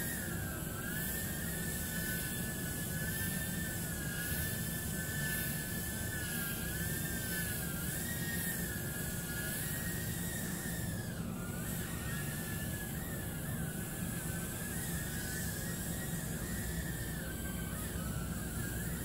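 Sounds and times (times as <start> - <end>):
quadcopter motors whining: 0.0 - 19.0.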